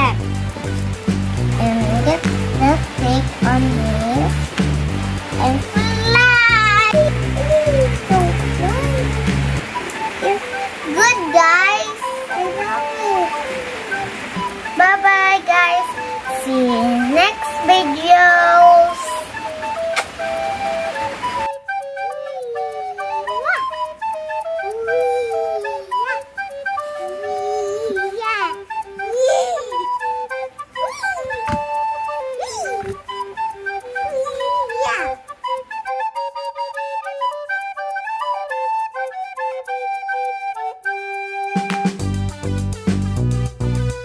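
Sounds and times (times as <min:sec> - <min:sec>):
flute-like sliding melody: 0:00.0 - 0:44.0.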